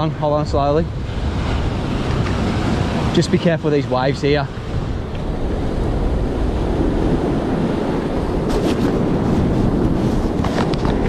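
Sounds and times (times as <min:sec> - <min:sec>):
ocean surf breaking on rocks: 0:00.0 - 0:11.0
wind buffeting microphone: 0:00.0 - 0:11.0.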